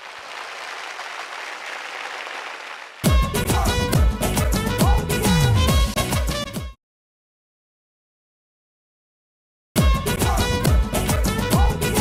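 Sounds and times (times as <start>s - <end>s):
audience applauding: 0.0s - 3.1s.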